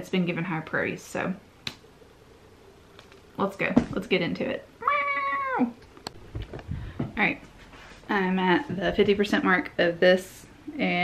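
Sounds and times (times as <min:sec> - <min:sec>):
cat meowing: 0:04.8 - 0:05.8.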